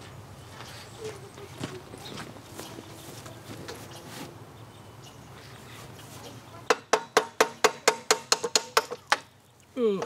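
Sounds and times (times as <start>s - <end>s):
hammer tapping on metal: 6.7s - 9.3s.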